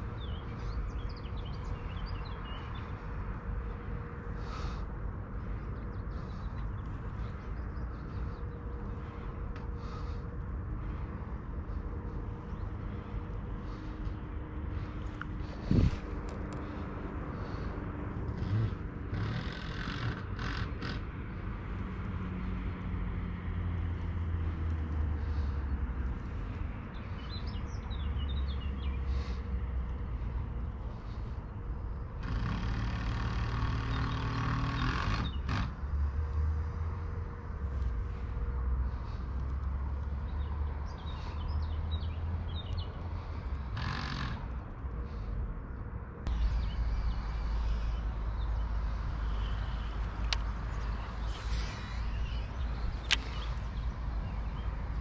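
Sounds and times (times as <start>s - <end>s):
steady low rumble: 0.0s - 19.2s, 44.4s - 55.0s
birds chirping: 0.0s - 36.2s, 37.0s - 55.0s.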